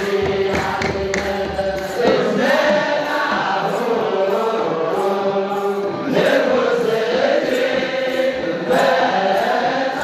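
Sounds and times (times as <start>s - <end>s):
drums: 0.0s - 9.1s
choral chant: 0.0s - 10.0s.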